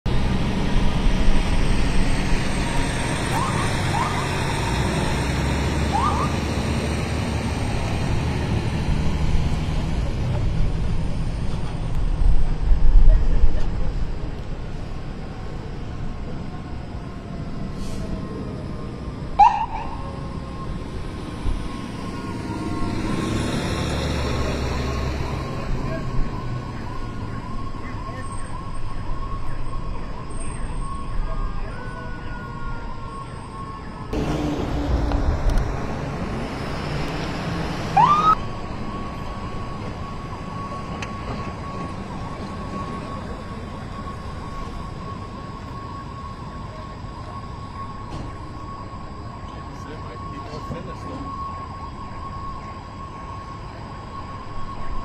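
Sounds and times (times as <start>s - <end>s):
heavy engine rumbling: 0.0s - 55.0s
warbling siren: 0.2s - 9.4s, 10.6s - 55.0s
short siren chirps: 3.2s - 6.6s, 19.3s - 35.0s, 37.9s - 55.0s.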